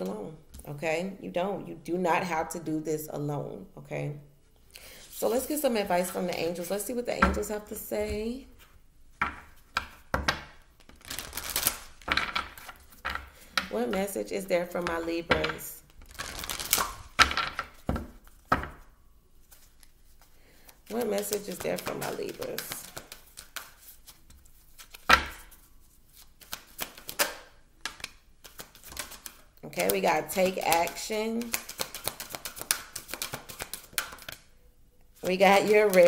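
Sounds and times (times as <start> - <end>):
cards shuffling: 10.8 - 14.1, 14.7 - 18.5, 19.4 - 34.5, 35.2 - 36.0.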